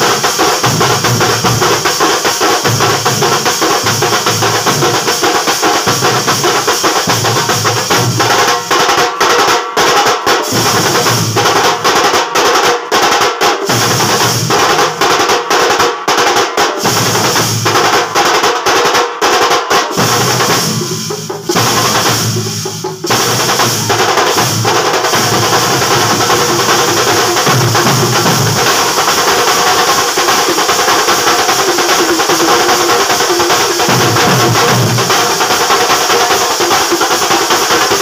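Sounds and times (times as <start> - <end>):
stick-beaten drums: 0.0 - 38.0.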